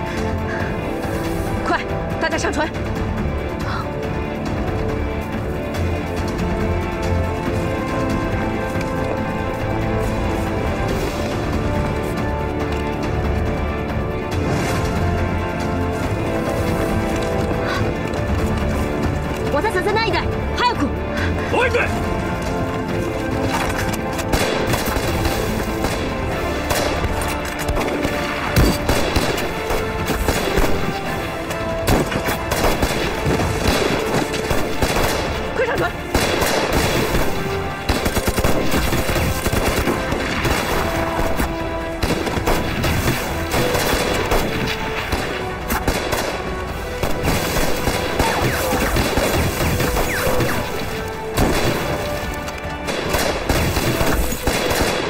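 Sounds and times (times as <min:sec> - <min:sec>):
background music: 0:00.0 - 0:55.0
rapid rifle and machine-gun fire: 0:24.2 - 0:31.2, 0:31.8 - 0:55.0.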